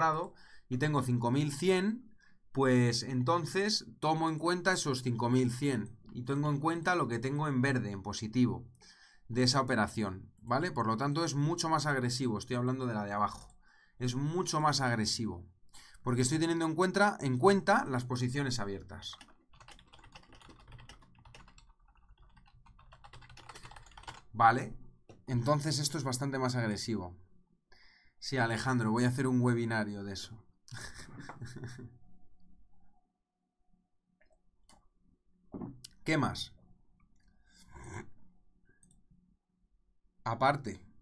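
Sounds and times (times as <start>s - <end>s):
typing on computer keyboard: 19.0s - 24.3s.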